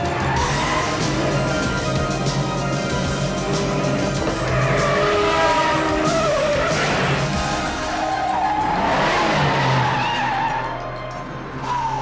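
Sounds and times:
car tyres squealing: 0.0s - 10.8s, 11.5s - 12.0s
soundtrack music: 0.0s - 12.0s.

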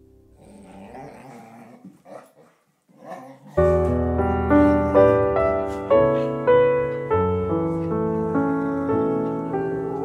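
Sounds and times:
soft music: 0.0s - 1.8s, 3.2s - 10.0s
dogs play-growling: 0.4s - 4.0s
loud piano music: 3.6s - 10.0s.

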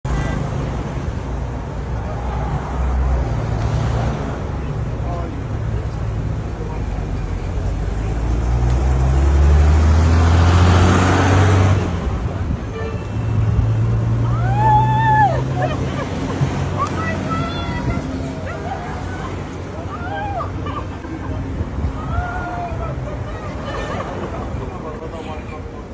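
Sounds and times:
road traffic rumble: 0.0s - 25.9s
vehicle passing close: 7.4s - 12.5s.

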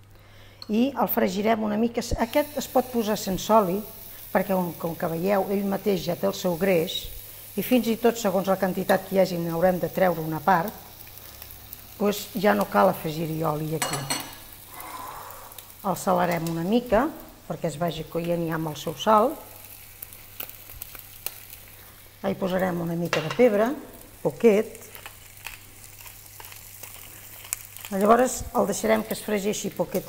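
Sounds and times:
meat sizzling in a pan: 2.1s - 30.0s.

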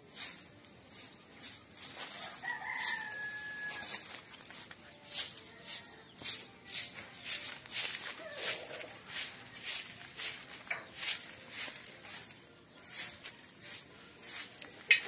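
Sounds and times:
rooster crowing: 2.2s - 4.1s.

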